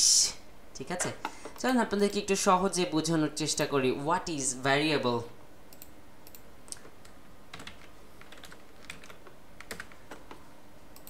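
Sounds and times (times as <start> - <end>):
faint hiss: 0.0 - 0.5
keyboard and mouse clicks: 5.7 - 11.0.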